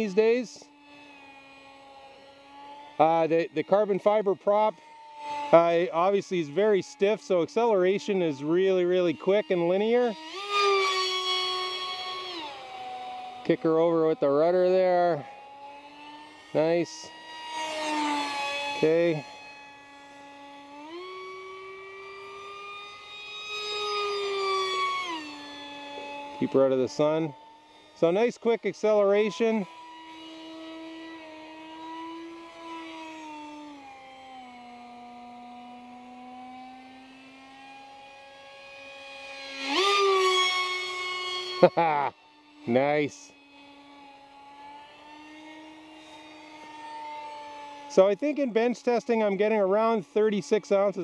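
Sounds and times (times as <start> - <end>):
electric motor high whine: 0.0 - 51.0.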